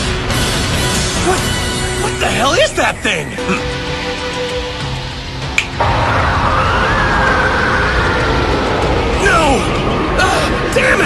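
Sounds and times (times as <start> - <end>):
dense rushing roar: 4.6 - 11.0.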